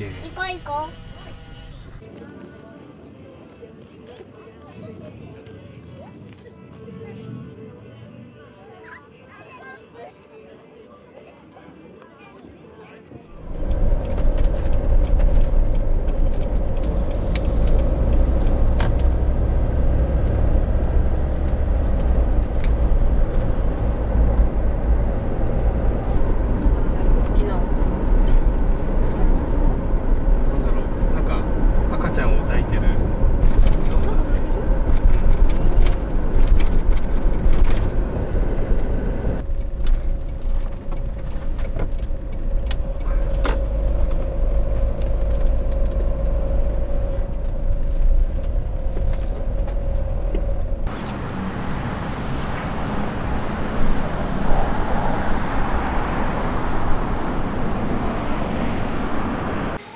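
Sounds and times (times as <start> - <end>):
van engine and road rumble: 0.0 - 2.2, 13.2 - 59.9.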